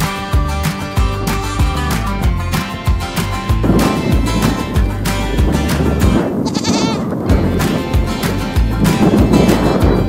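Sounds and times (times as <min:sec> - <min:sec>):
music with steady beat: 0:00.0 - 0:06.5, 0:07.3 - 0:10.0
goat bleating: 0:06.4 - 0:07.2.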